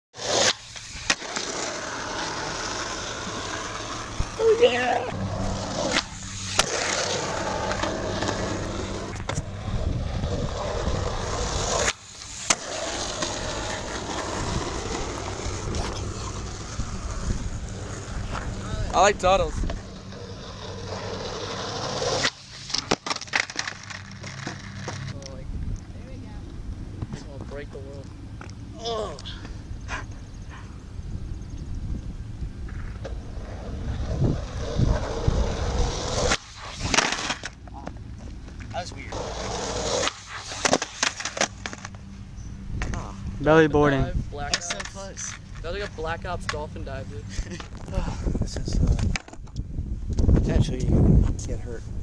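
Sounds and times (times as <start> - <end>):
skateboard wheels rolling on asphalt: 0.2 - 28.7, 31.2 - 52.0
sharp skateboard clack: 0.3 - 2.2, 5.8 - 9.5, 11.3 - 16.5, 21.4 - 25.1, 36.0 - 38.0, 39.6 - 41.9
skateboard clacking on ground: 19.6 - 25.3, 44.5 - 46.6, 48.8 - 49.6.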